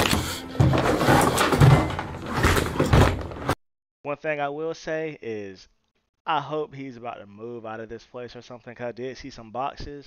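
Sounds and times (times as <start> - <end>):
rummaging and clattering: 0.0 - 3.6.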